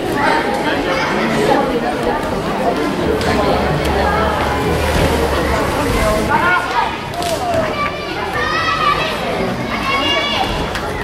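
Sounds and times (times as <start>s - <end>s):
hall background noise: 0.0s - 11.0s
children shouting: 3.0s - 11.0s.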